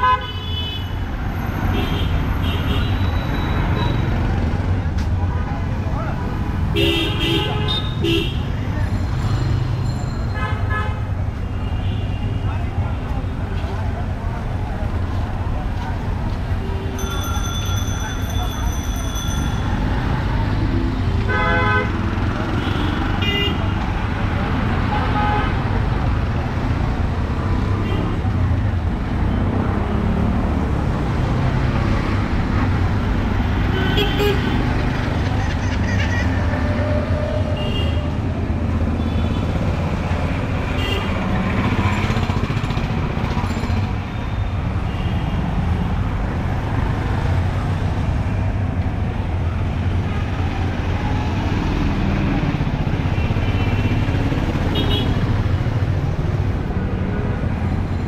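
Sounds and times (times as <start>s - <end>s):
traffic engines rumbling: 0.0s - 58.0s
voices of passers-by: 0.8s - 58.0s.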